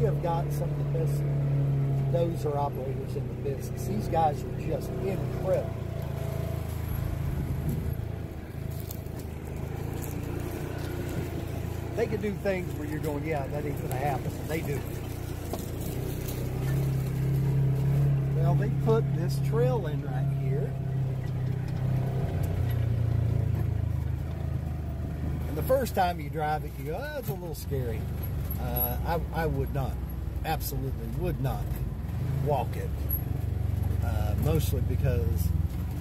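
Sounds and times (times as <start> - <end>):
vehicle engine running: 0.0 - 36.0.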